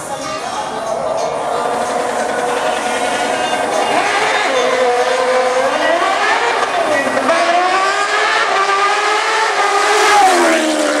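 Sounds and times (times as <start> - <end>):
motorcycle engine accelerating hard: 0.6 - 11.0.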